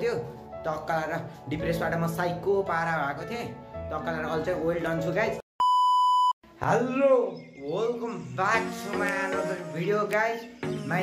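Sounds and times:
high censor bleep: 0:05.6 - 0:06.4
man talking: 0:06.6 - 0:08.8.

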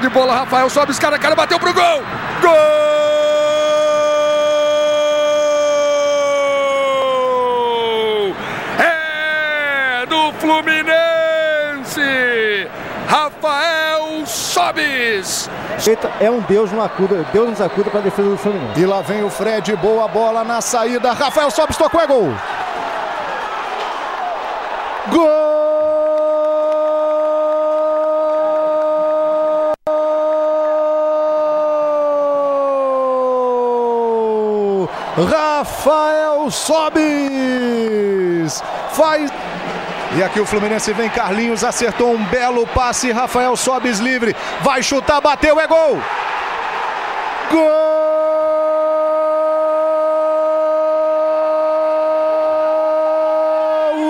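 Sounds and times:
crowd noise: 0:00.0 - 0:26.9, 0:31.9 - 0:54.0
commentator goal cry: 0:01.6 - 0:22.4, 0:47.5 - 0:54.0.

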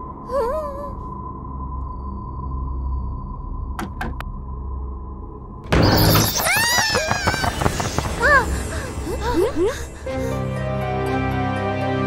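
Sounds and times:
low eerie rumbling drone: 0:00.0 - 0:10.8
doors bursting open: 0:05.7 - 0:09.4.

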